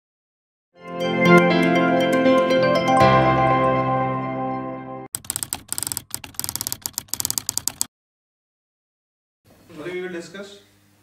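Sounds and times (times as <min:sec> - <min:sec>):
keystroke clicks: 0:05.2 - 0:07.9.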